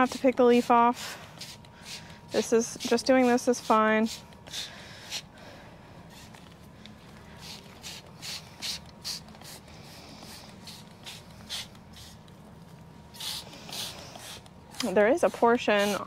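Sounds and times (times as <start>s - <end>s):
spray bottle hissing spritzes: 7.4s - 12.2s.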